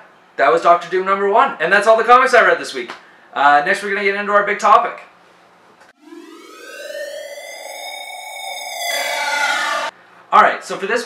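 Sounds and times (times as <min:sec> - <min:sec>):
loud noisy burst: 0:06.0 - 0:09.9
electronic rising siren tone: 0:06.0 - 0:10.0.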